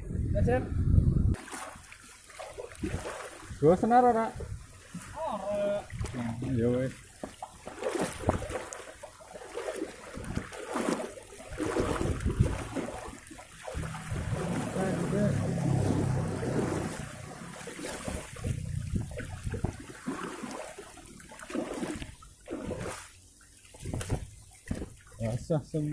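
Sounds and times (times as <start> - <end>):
seawater splashing over stony shore: 1.4 - 25.9
voices: 14.3 - 17.6.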